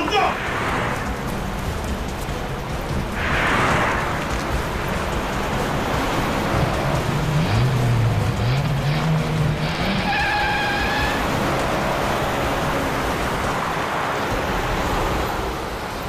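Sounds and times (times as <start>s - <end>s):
cars driving fast: 0.0s - 16.0s.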